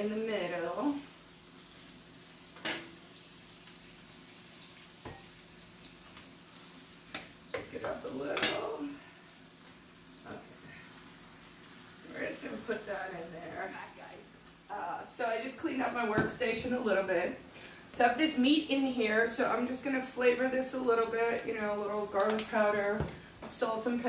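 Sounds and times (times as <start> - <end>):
meat and onions sizzling: 0.0 - 15.0.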